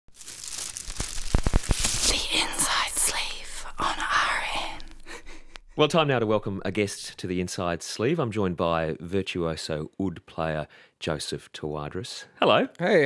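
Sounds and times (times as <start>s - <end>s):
rushing crackling noise: 0.1s - 5.2s
man speaking: 5.7s - 7.8s.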